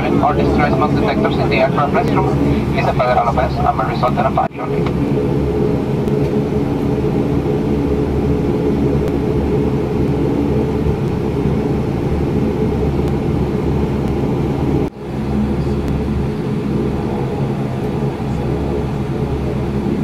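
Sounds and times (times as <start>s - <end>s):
aircraft engines droning: 0.0s - 20.0s.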